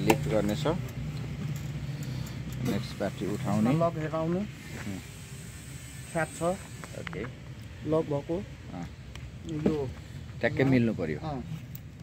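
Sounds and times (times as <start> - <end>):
steady low hum: 0.0 - 12.0
man speaking: 2.6 - 5.0, 6.2 - 11.5.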